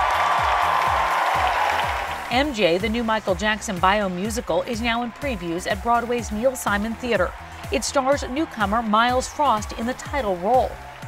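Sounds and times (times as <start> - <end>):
audience applauding and cheering: 0.0 - 11.0
music with steady thumping beat: 0.0 - 11.0.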